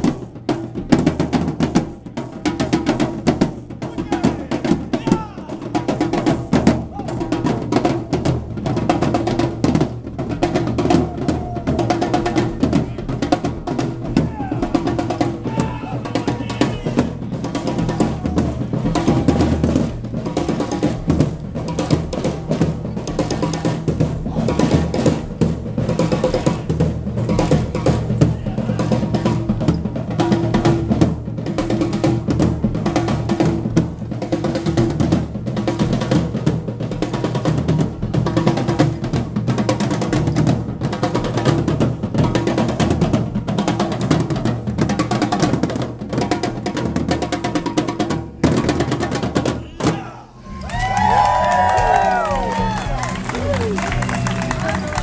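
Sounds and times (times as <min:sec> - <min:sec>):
marching snare drums: 0:00.0 - 0:55.0.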